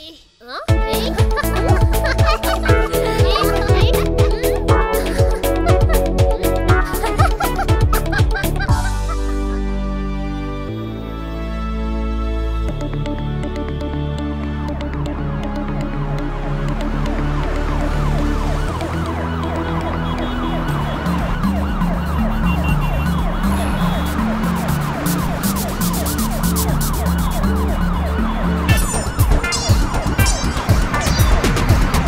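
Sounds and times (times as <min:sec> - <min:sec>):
background music with bass line: 0:00.7 - 0:32.0
ambulance siren wailing: 0:01.2 - 0:11.4, 0:14.7 - 0:32.0.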